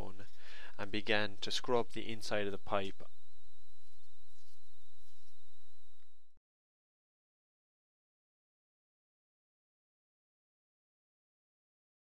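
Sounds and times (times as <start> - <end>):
electrical hum and hiss: 0.0 - 6.4
faint high-pitched whine: 0.0 - 6.4.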